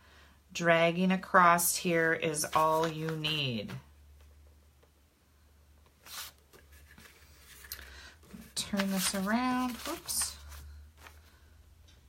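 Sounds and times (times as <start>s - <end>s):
paper rustling: 2.4s - 3.8s, 6.0s - 11.4s.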